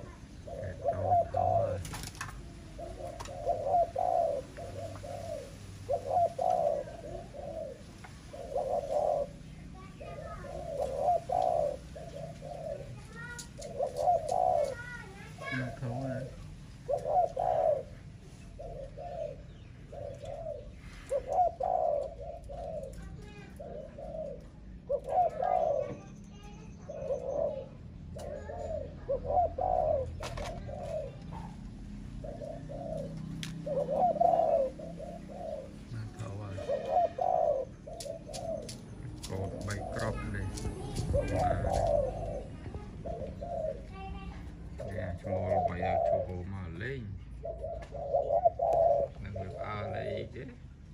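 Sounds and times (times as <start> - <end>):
doves cooing: 0.0 - 50.9.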